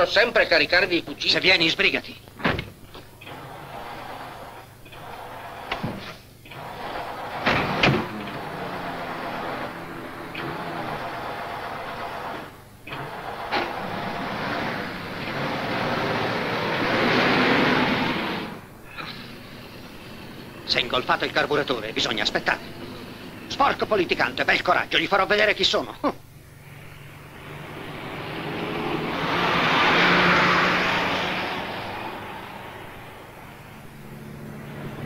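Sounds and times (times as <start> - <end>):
car starter cranking engine: 3.1 - 24.9.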